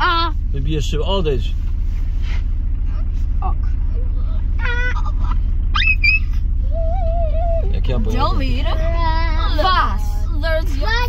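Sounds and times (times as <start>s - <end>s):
car engine idling: 0.0s - 11.0s
passengers talking: 2.8s - 11.0s.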